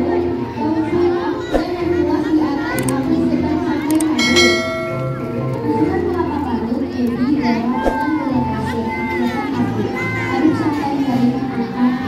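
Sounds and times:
background music: 0.0 - 12.0
voices: 0.0 - 12.0
click: 3.9 - 4.2
bright bell chime ringing: 4.2 - 5.9.

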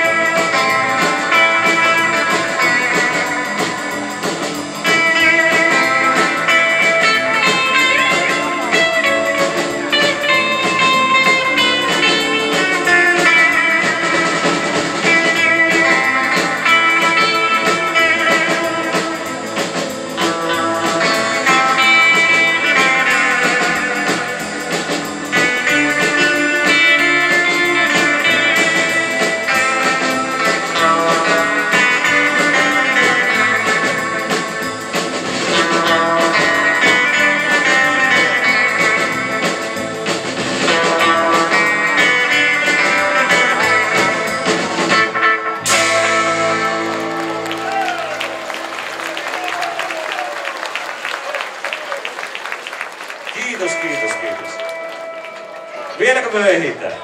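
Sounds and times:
electric lead guitar melody: 0.0 - 49.3, 53.4 - 57.0
bass guitar: 0.0 - 52.3, 53.0 - 57.0
drum kit steady beat: 0.0 - 56.7.

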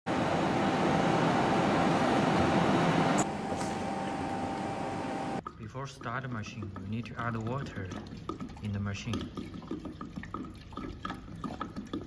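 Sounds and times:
high whine: 0.1 - 5.4
machine hum: 0.1 - 5.4.

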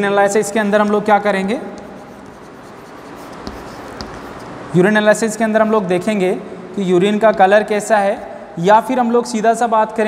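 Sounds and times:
chalk scratching on blackboard: 1.2 - 4.7.

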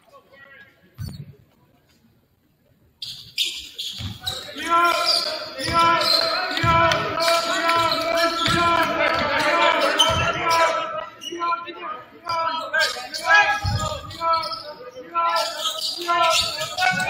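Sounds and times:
echoing gym noise: 3.1 - 17.0
basketball bouncing on wooden floor: 5.6 - 10.5.

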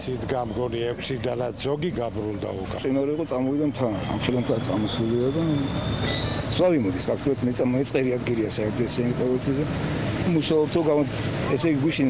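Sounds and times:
man talking: 0.0 - 5.8, 6.6 - 12.0
high-pitched whine: 0.0 - 12.0
low engine hum: 0.0 - 12.0.

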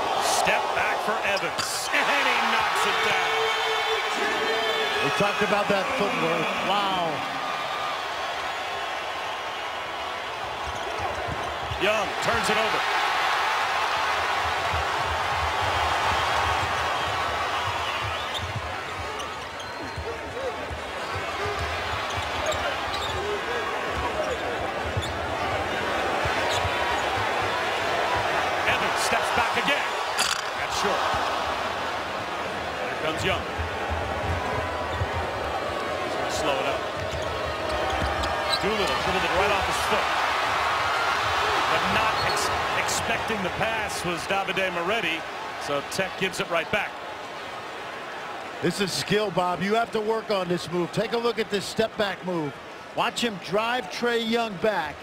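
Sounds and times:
arena crowd noise: 0.0 - 55.0.

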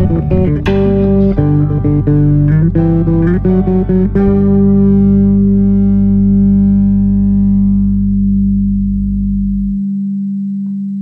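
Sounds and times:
deep low layer: 0.0 - 11.0
electric bass note held: 0.0 - 11.0.

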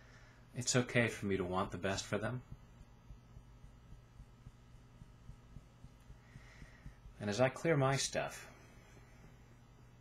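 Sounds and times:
low steady hum: 0.0 - 10.0
fingertips tapping: 1.2 - 8.0.

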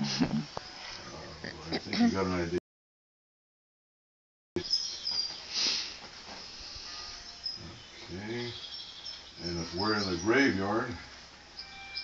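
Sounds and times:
faint high chirping: 4.6 - 12.0.

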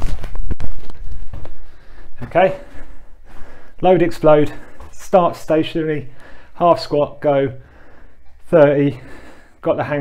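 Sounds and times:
light footsteps: 0.0 - 10.0.

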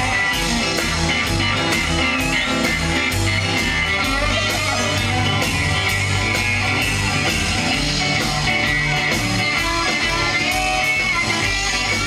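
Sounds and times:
electric guitar leading: 0.0 - 12.0
steady beat: 0.0 - 12.0.

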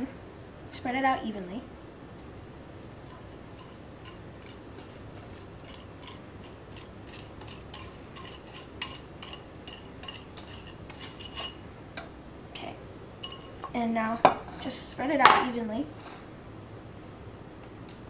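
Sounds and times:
wire whisk scraping glass bowl: 3.1 - 11.6.

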